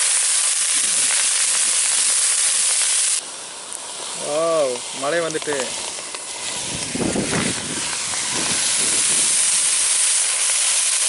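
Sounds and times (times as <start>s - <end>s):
vegetables sizzling in a pot: 0.0s - 11.0s.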